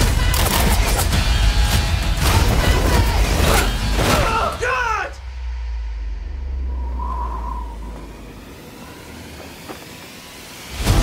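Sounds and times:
deep cinematic rumble: 5.2 - 9.8.

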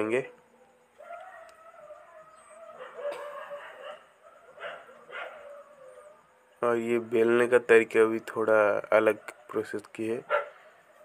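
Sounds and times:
faint animal calls: 0.0 - 11.0.

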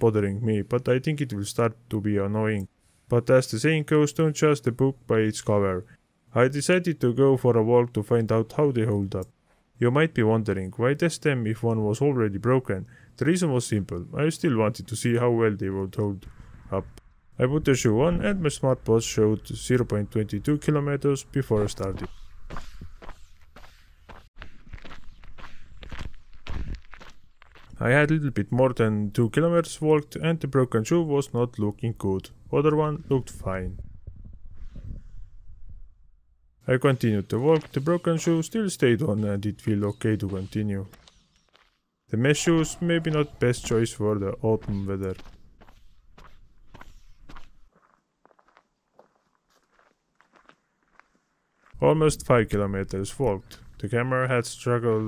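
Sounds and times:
footsteps on gravelly asphalt: 21.6 - 27.8, 41.4 - 41.8, 43.1 - 51.8.

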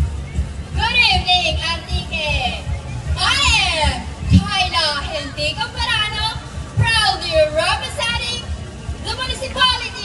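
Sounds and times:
low thudding music beat: 0.0 - 9.8.

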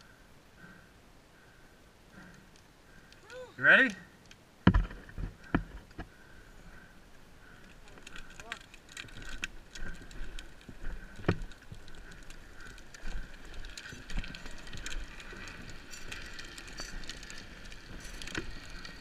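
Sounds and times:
wheels rolling over asphalt: 4.6 - 19.0.

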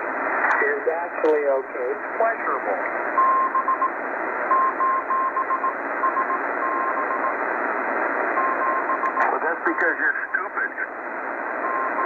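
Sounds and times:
shortwave radio static hissing: 0.0 - 3.2, 5.7 - 12.0
morse code tone: 4.5 - 7.3.

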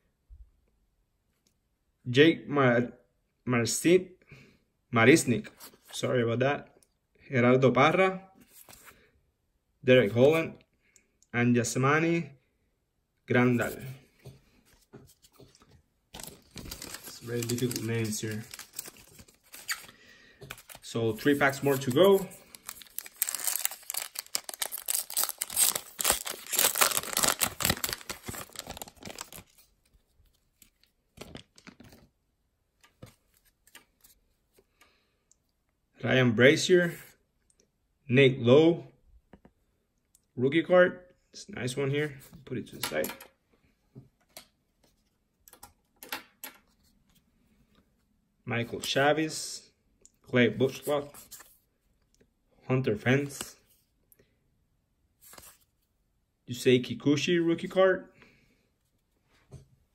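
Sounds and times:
trading cards rustling: 14.7 - 32.1, 55.2 - 55.7
card-pack wrapper clicks: 21.7 - 29.5.

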